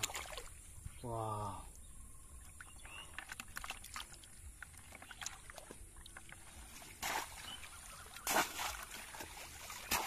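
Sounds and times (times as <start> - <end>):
splash of pond water: 0.0 - 0.6, 6.3 - 10.0
water drips and ticks: 1.6 - 10.0.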